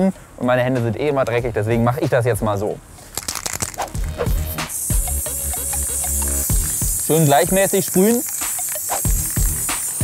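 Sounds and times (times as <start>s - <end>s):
aerosol can rattling: 3.0s - 10.0s
spray paint hissing: 3.0s - 10.0s
background music: 3.8s - 10.0s.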